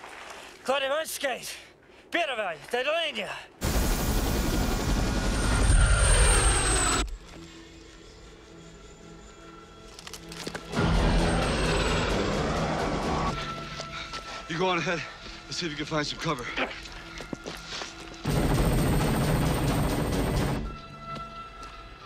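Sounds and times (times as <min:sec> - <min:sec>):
helicopter passing close by: 0:03.6 - 0:07.0
orchestral film music: 0:06.7 - 0:22.0.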